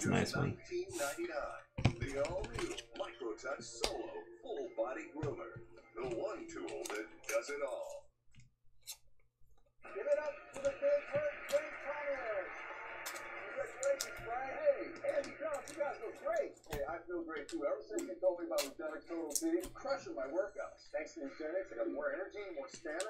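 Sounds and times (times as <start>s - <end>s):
muffled television commercial voice: 0.0s - 8.1s, 9.8s - 23.0s.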